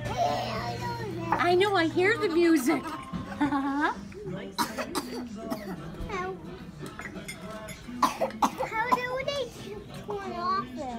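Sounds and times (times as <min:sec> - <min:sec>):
person coughing: 0:04.6 - 0:05.8, 0:08.0 - 0:09.0.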